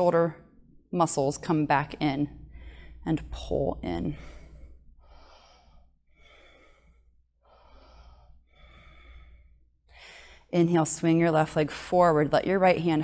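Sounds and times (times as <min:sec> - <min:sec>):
slow soft breathing: 0:02.4 - 0:03.1, 0:04.0 - 0:10.6.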